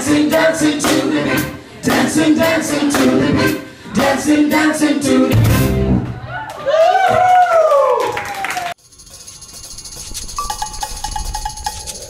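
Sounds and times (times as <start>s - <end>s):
high ringing: 8.8s - 12.0s
soft hand percussion: 8.8s - 12.0s.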